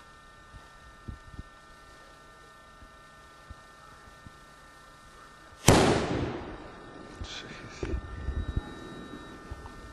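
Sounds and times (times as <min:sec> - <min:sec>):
flash powder explosion bang: 0:05.6 - 0:07.2.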